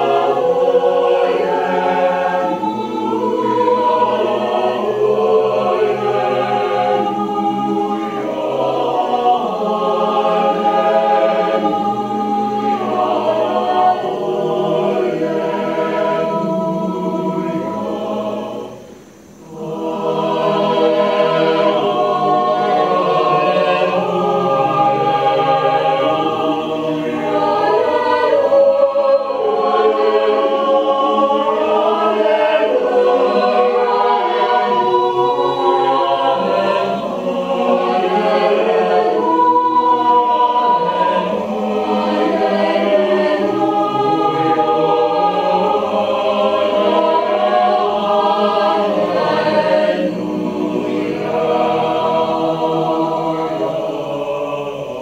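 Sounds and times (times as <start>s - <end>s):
mixed choir singing a cappella: 0.0s - 55.0s.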